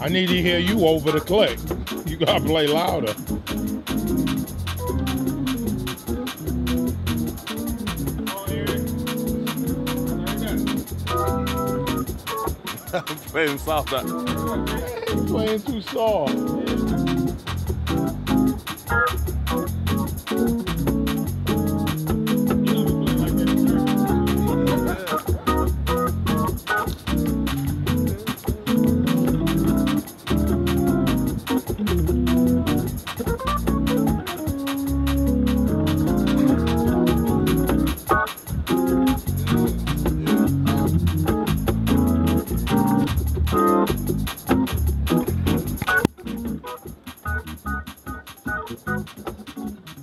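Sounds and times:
gospel organ playing: 0.0s - 49.3s
fast ticking beat: 0.0s - 50.0s.

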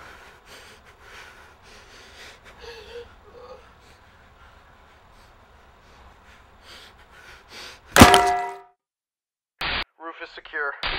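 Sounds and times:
loud metallic clang: 8.0s - 8.7s.

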